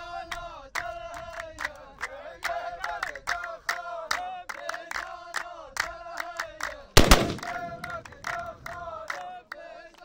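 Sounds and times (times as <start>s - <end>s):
men chanting in unison: 0.0s - 10.0s
hand claps: 0.7s - 10.0s
gunshot blast: 7.0s - 8.1s.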